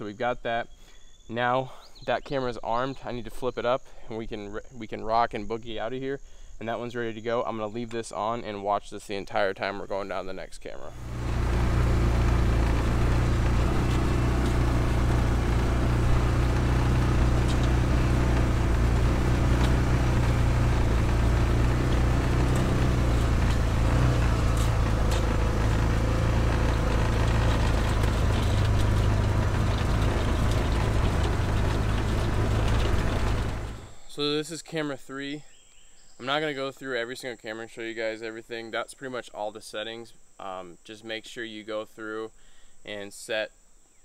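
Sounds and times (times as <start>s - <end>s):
utility vehicle engine running: 10.9s - 34.2s
rattling ride noise: 10.9s - 34.5s.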